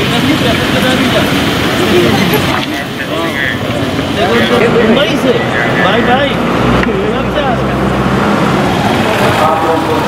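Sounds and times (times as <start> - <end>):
man making public announcement: 0.0 - 7.9, 9.0 - 10.0
loud steady outdoor rumble: 0.0 - 10.0
men talking and calling out: 0.0 - 10.0.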